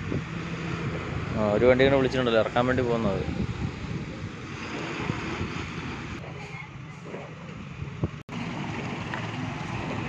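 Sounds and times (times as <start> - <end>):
wind blowing on microphone: 0.0 - 6.2.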